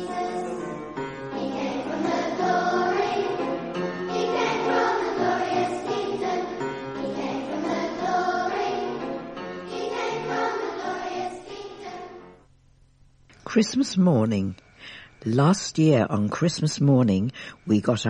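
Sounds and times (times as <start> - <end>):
children's choir singing: 0.0 - 12.4.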